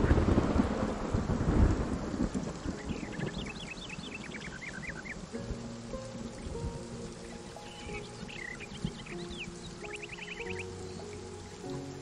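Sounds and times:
steady rain: 0.0 - 12.0
thunderclap rumbling: 0.0 - 12.0.

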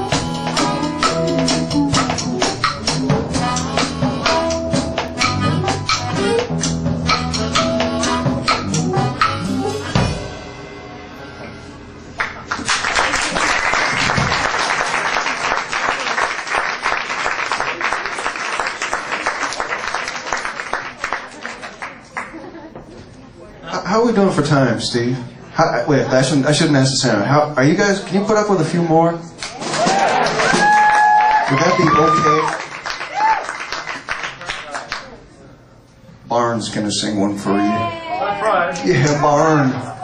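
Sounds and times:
live band playing: 0.0 - 12.0
audience applauding: 12.2 - 22.4, 29.4 - 35.2.

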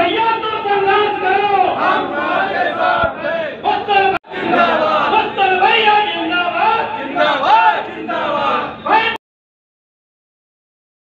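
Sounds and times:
crowd of men shouting: 0.0 - 9.2.

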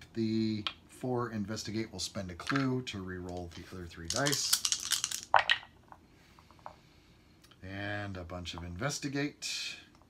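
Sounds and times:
dice clattering in wooden tray: 2.4 - 5.8.

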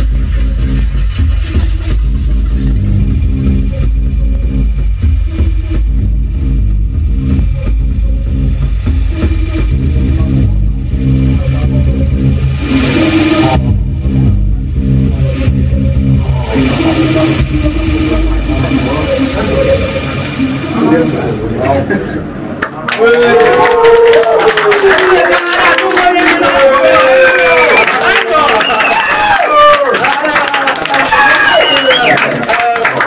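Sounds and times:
low growling synthesizer bass drone: 0.0 - 22.6
washes of synthesized noise: 0.2 - 22.6.

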